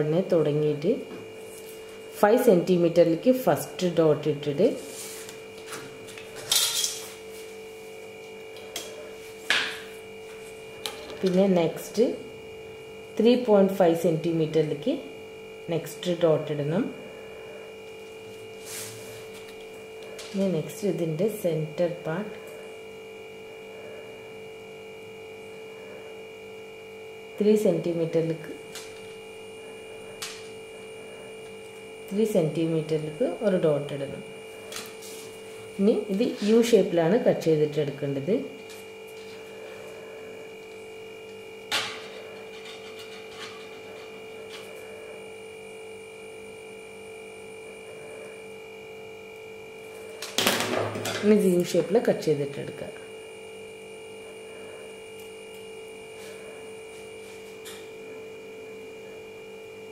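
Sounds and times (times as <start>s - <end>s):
steady electrical hum: 0.0s - 59.9s.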